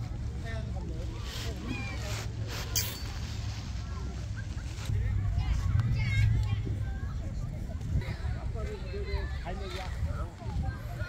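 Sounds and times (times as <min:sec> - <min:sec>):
faint distant voices: 0:00.0 - 0:11.0
wind rumbling on microphone: 0:03.2 - 0:11.0.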